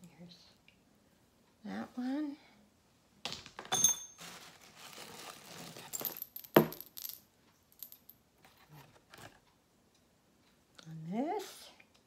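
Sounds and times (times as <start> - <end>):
jewelry clinking and rattling: 3.6 - 8.1
rustle: 4.1 - 6.5.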